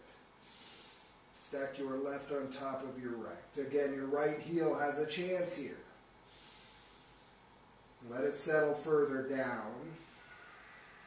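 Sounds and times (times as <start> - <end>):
person exhaling breathily: 0.4 - 1.2, 6.3 - 7.4, 10.0 - 11.0.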